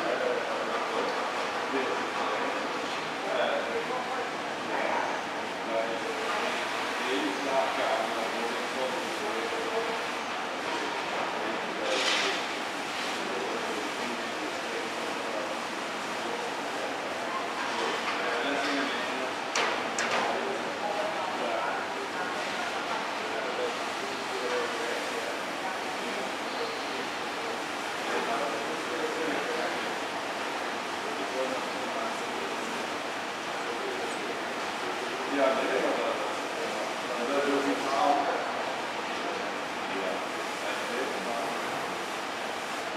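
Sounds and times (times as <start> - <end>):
muffled voices: 0.0 - 42.9.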